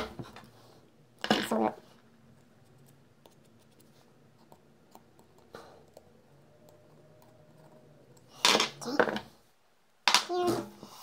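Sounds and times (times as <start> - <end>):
faint hum: 1.8 - 10.0.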